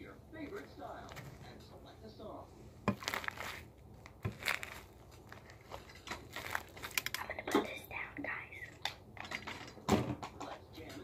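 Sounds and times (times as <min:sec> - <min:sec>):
foam crackling and clicking: 0:02.9 - 0:07.3
person whispering: 0:07.2 - 0:08.8.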